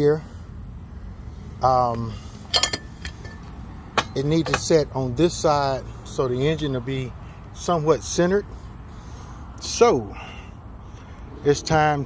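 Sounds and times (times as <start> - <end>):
light metal clinks: 2.4 - 4.8.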